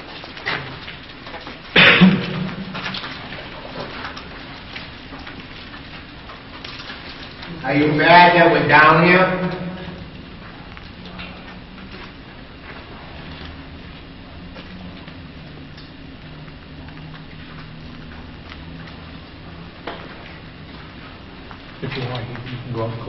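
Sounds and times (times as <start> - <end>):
faint clicks and crackles: 0.0 - 7.9, 9.4 - 23.0
low hum: 0.0 - 23.0.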